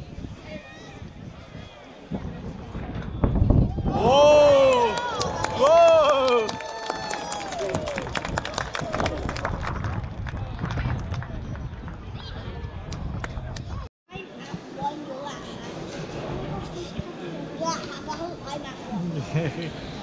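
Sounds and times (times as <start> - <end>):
onlookers shouting excitedly: 3.8 - 7.8
people clapping: 4.6 - 13.7.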